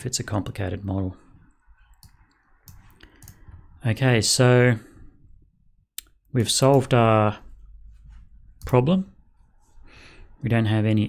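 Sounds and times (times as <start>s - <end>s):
faint computer mouse clicks: 2.0s - 3.5s.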